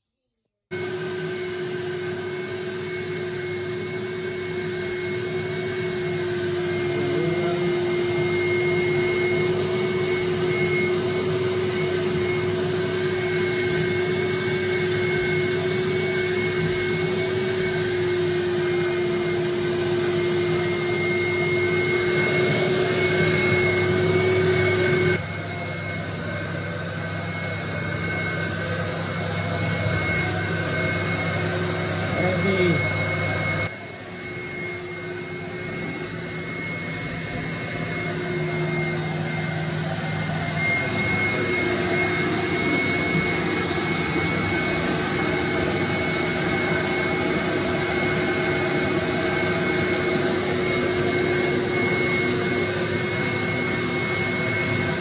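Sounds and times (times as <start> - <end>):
vacuum motor whining: 0.7 - 55.0.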